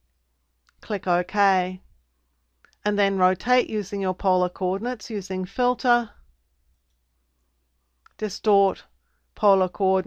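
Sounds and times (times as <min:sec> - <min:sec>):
low steady hum: 0:00.0 - 0:10.0
woman speaking: 0:00.8 - 0:01.8, 0:02.8 - 0:06.2, 0:08.1 - 0:10.0.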